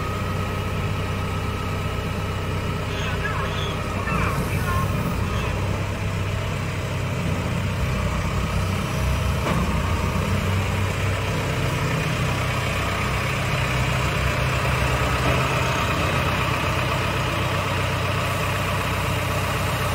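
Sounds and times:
diesel engine running: 0.0s - 19.9s.

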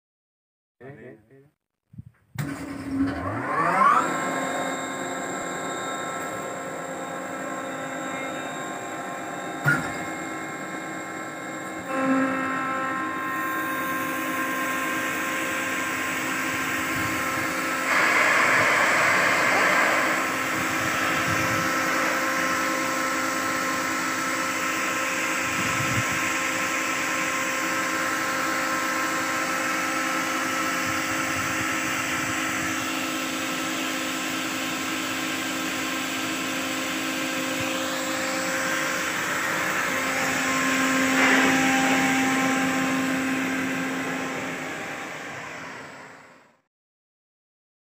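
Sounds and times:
air compressor droning: 3.7s - 46.4s
air hissing: 14.9s - 24.8s
rush of air: 15.1s - 24.8s.

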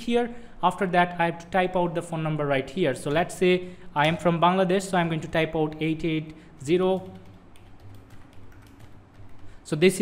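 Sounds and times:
keyboard keys clicking: 6.9s - 9.5s.

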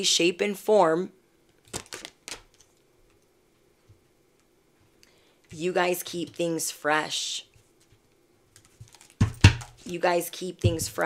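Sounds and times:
dull knock: 9.2s - 9.7s, 10.6s - 11.0s.

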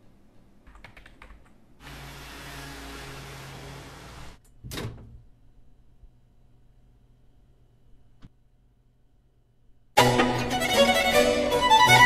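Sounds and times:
laptop keys clicking: 0.7s - 1.6s.

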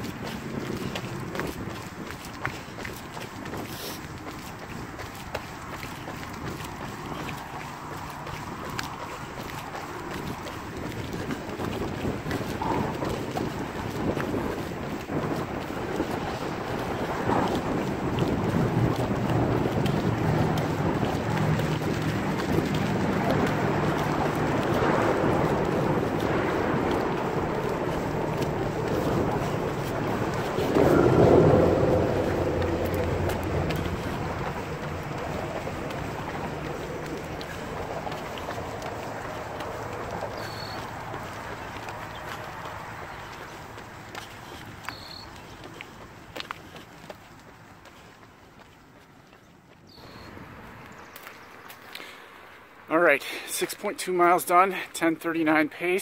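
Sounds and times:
running footfalls: 0.0s - 52.2s
wind buffeting microphone: 0.0s - 52.2s
low rumble: 16.1s - 41.8s.

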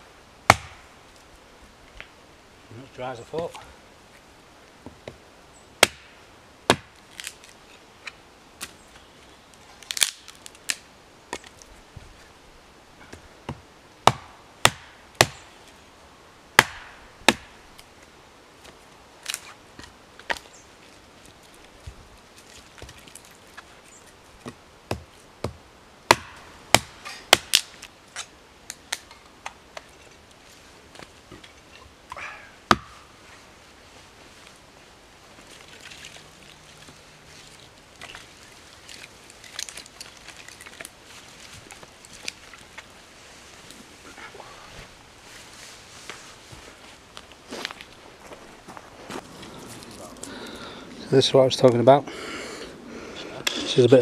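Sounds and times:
hatchet chopping logs: 0.5s - 0.9s, 5.8s - 7.4s, 13.1s - 15.4s, 16.6s - 17.6s, 24.4s - 28.3s, 32.1s - 33.1s.

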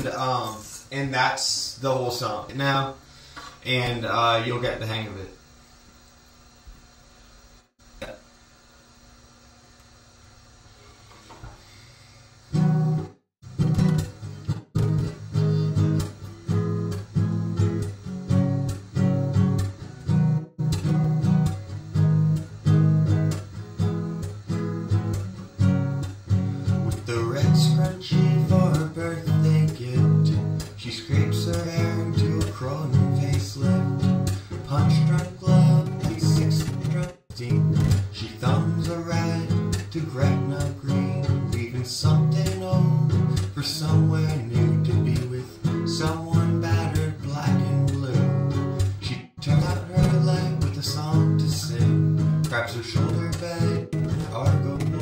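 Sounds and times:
acoustic guitar strumming: 12.5s - 55.0s
man singing: 26.9s - 55.0s.

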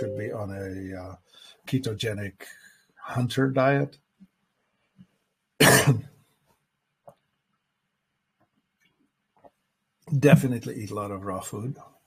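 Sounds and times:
man coughing: 5.6s - 6.1s.

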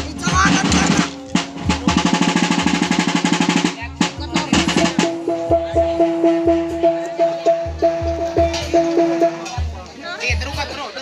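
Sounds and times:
fast drum roll: 0.0s - 9.7s.

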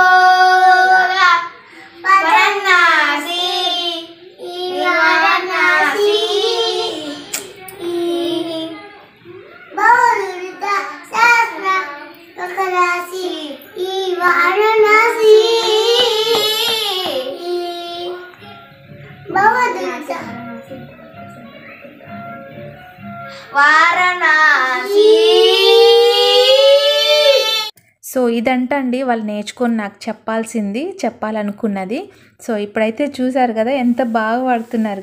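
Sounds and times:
child singing: 0.0s - 18.6s, 23.5s - 27.7s.

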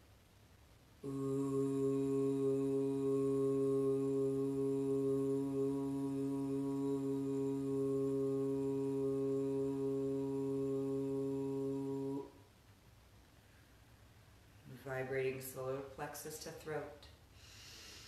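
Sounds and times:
woman chanting low ooh: 1.0s - 12.4s.

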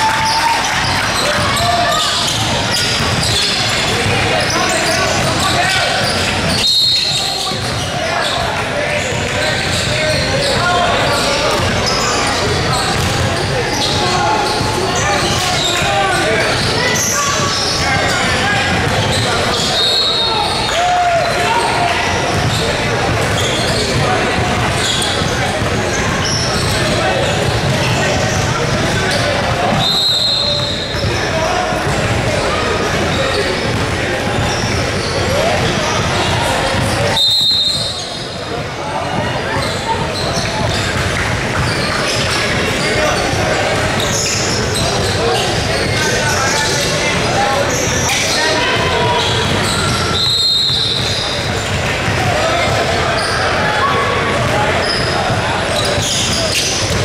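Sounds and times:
crowd and player chatter: 0.0s - 57.0s
referee's whistle blasts: 6.5s - 7.4s, 19.6s - 20.6s, 29.7s - 31.1s, 37.1s - 38.3s, 49.1s - 51.3s
basketball bouncing on hardwood: 12.9s - 13.2s.

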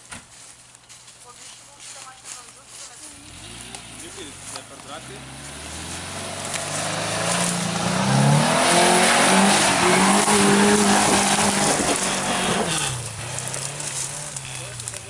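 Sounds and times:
wheels spinning in mud: 3.0s - 15.0s
car engine revving: 3.1s - 15.0s.

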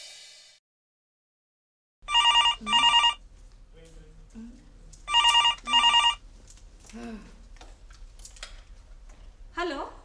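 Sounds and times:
warbling electronic telephone ring: 2.1s - 3.2s, 5.1s - 6.2s.

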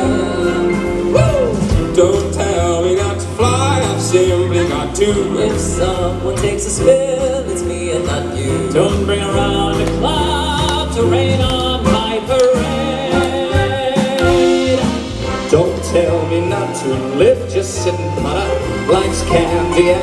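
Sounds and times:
male vocal group singing: 0.0s - 20.0s
swing band playing: 0.0s - 20.0s.

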